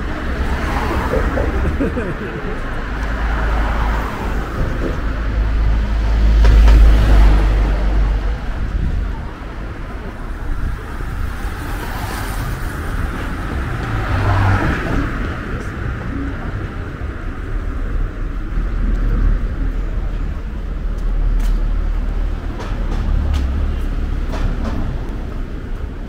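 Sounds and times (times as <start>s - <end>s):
deep low rumble: 0.0s - 11.6s, 12.4s - 26.0s
cars passing: 0.0s - 26.0s.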